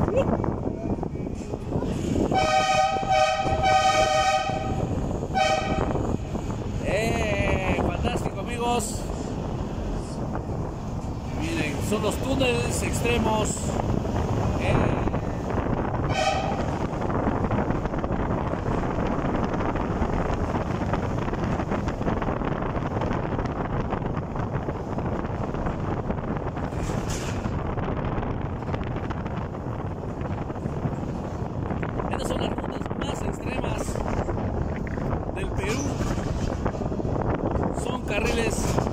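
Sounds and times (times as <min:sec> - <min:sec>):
car engine and tyre noise: 0:00.0 - 0:38.9.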